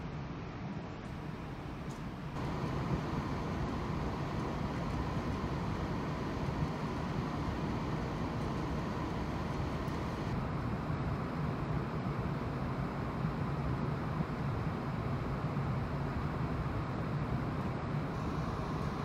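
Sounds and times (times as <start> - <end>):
ship engines and ventilation drone: 0.0 - 19.0.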